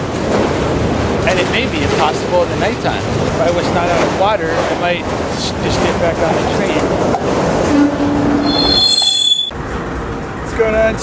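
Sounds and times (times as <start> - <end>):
train wheels squealing on rails: 7.7 - 9.6.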